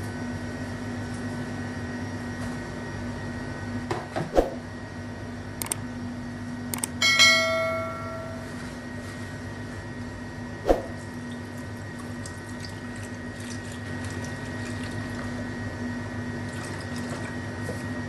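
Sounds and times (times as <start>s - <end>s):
steady low hum: 0.0s - 18.0s
notification bell chime: 7.0s - 8.6s.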